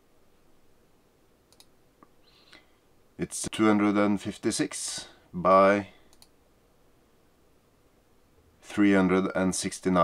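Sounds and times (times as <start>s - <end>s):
faint computer mouse clicks: 1.5s - 2.6s, 6.1s - 6.4s.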